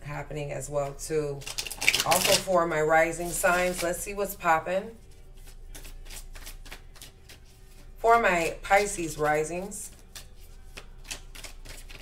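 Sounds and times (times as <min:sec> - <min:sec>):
cards being shuffled: 0:01.4 - 0:04.0, 0:05.1 - 0:08.0, 0:08.7 - 0:12.0.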